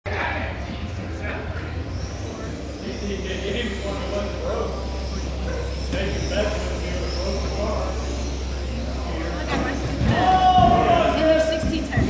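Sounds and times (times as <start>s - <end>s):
people talking indistinctly: 0.1s - 12.0s
steady low hum: 0.1s - 12.0s.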